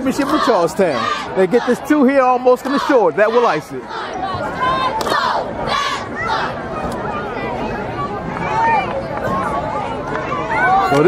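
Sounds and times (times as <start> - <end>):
football crowd shouting: 0.0 - 11.0.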